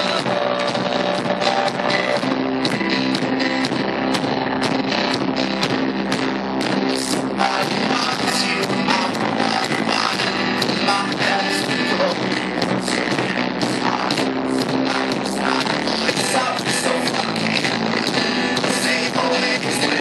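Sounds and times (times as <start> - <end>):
live band music: 0.0 - 20.0
steady drum beat: 0.0 - 20.0.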